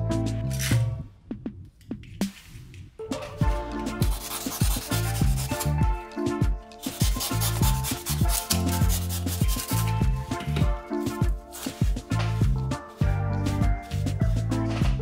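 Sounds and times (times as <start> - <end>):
background music with steady beat: 0.0 - 15.0
knife cutting through foam: 6.9 - 9.9.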